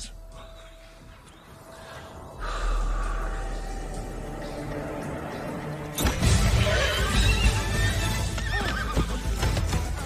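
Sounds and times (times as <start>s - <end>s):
orchestral score: 2.2s - 10.0s
hooves pounding: 6.0s - 10.0s
horse neighing: 6.2s - 9.2s.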